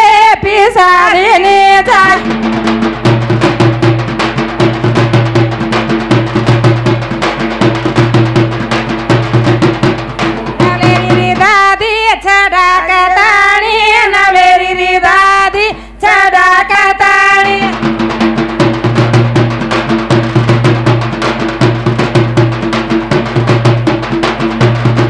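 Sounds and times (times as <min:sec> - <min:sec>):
woman singing folk song: 0:00.0 - 0:02.2, 0:10.6 - 0:17.8
drums beating: 0:00.1 - 0:12.2, 0:16.6 - 0:25.0.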